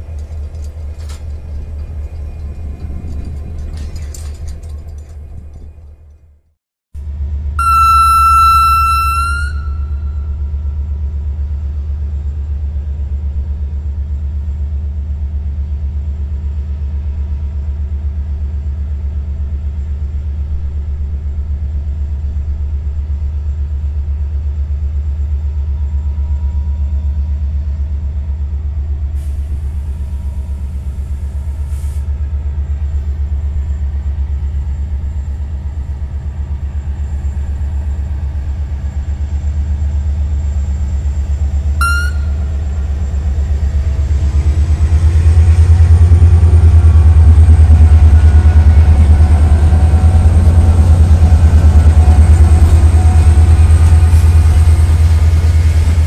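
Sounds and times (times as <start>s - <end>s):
diesel locomotive rumbling: 0.0s - 56.0s
brief high squeak: 7.6s - 10.4s, 41.8s - 42.6s.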